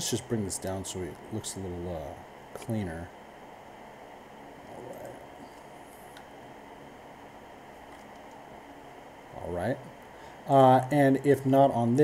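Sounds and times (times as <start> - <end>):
microphone hiss and hum: 0.0 - 12.0.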